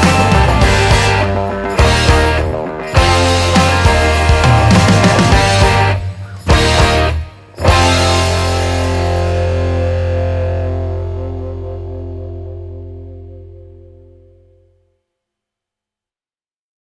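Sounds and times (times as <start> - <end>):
distorted electric guitar chord: 0.0 - 14.7
bass guitar: 0.0 - 14.8.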